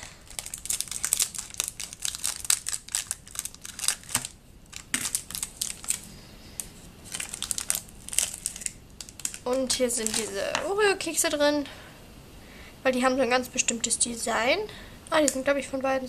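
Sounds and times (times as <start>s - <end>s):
foil wrapper crinkling: 0.0s - 10.6s.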